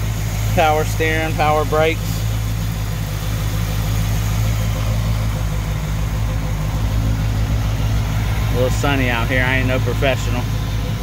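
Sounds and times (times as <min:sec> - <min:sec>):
car engine idling: 0:00.0 - 0:11.0.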